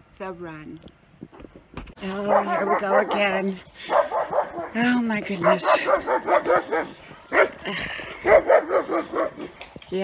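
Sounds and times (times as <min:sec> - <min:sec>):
dog barking: 0:02.1 - 0:07.6, 0:08.2 - 0:09.5.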